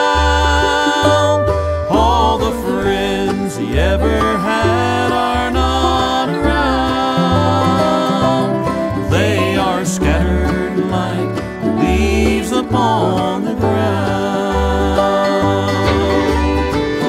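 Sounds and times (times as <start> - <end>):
bass line: 0.0 - 17.0
person singing: 0.0 - 17.0
strummed guitar: 0.0 - 17.0
lead instrument sliding bends: 14.8 - 17.0.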